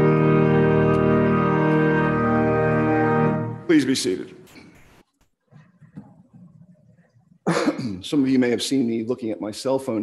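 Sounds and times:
man coughing: 7.4s - 8.1s.

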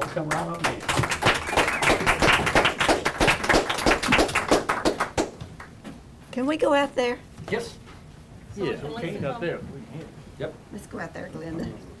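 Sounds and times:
people clapping: 0.0s - 5.8s.

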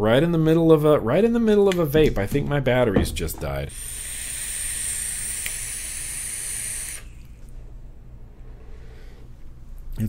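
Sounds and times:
electronic cigarette hissing: 3.7s - 7.5s.

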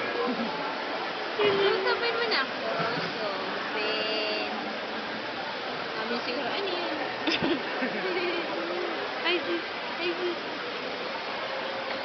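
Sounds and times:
busy room background noise: 0.0s - 12.0s.

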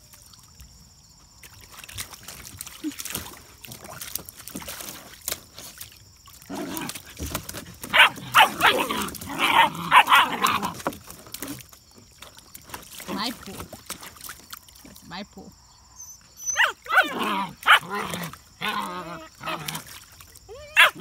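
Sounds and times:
puppies yapping and barking: 7.8s - 10.9s, 16.0s - 19.8s.

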